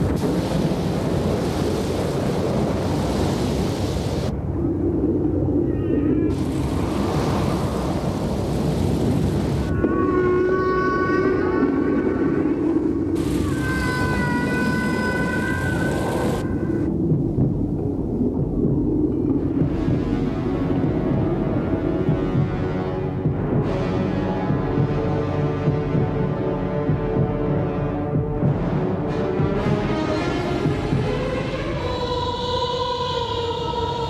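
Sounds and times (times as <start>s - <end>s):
low drone: 0.0s - 29.1s
rushing rumbling water noise: 0.0s - 34.0s
high eerie tones: 9.6s - 17.2s.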